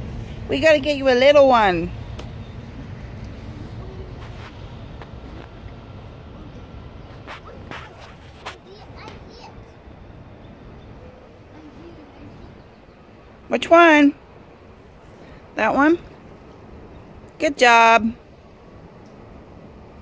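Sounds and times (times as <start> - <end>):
outdoor background noise: 0.0 - 20.0
child's faint voice: 3.5 - 4.3, 8.6 - 9.8, 11.0 - 12.5.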